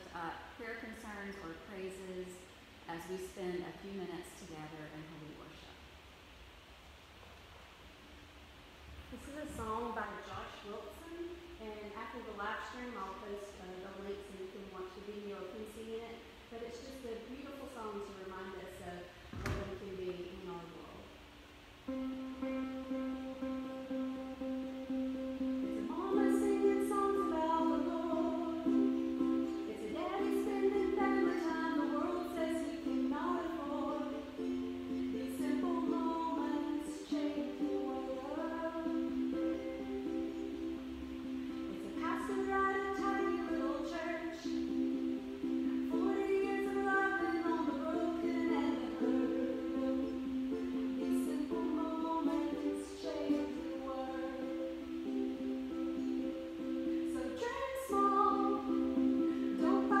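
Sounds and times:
woman singing: 0:09.1 - 0:21.0, 0:25.4 - 0:40.6, 0:41.6 - 1:00.0
ukulele strumming: 0:19.5 - 1:00.0.

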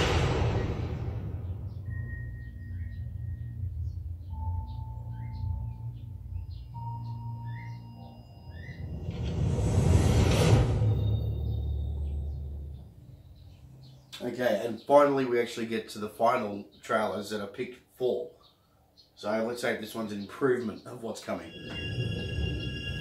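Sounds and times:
big whooshing swell: 0:00.0 - 0:02.6, 0:08.6 - 0:13.2, 0:21.5 - 0:23.0
low rumbling drone: 0:00.0 - 0:14.1, 0:21.5 - 0:23.0.

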